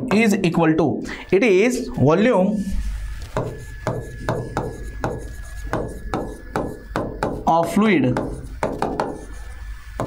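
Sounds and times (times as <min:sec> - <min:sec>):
faint high whine: 0:00.0 - 0:10.0
pen tapping on glass: 0:03.3 - 0:09.2.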